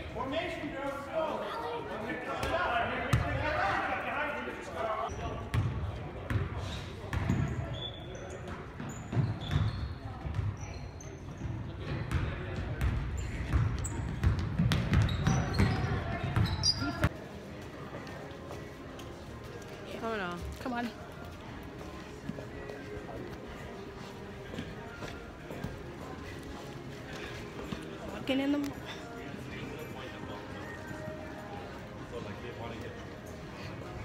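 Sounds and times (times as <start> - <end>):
sneaker squeaks: 6.6 - 12.2, 12.8 - 17.2
basketball bouncing on wooden court: 8.8 - 10.5, 12.1 - 16.8.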